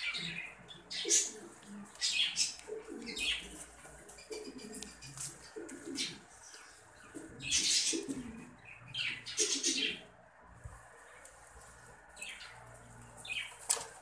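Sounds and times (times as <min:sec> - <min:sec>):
pigeons cooing: 0:00.0 - 0:14.0.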